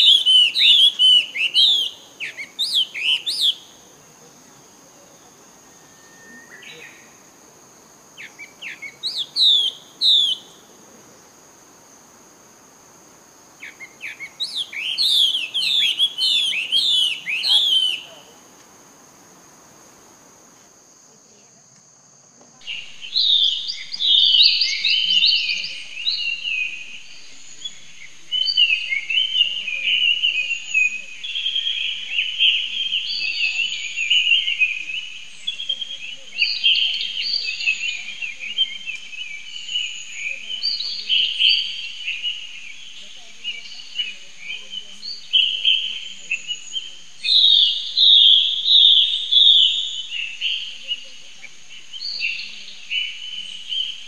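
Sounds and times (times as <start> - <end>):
birds chirping: 0.0 - 20.3, 22.6 - 54.0
high insect whine: 0.0 - 54.0.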